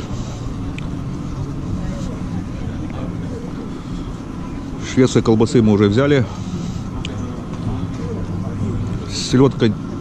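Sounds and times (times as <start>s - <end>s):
distant voices of passers-by: 0.0s - 10.0s
low crowd rumble: 0.0s - 10.0s.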